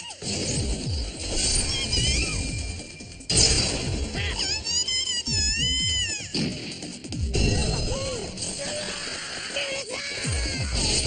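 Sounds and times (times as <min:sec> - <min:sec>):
girl screaming: 0:08.9 - 0:11.0.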